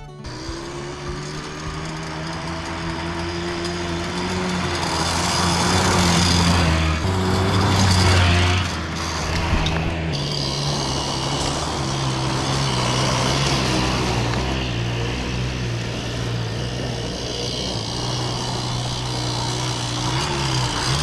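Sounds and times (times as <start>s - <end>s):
small engine running: 0.0s - 21.0s.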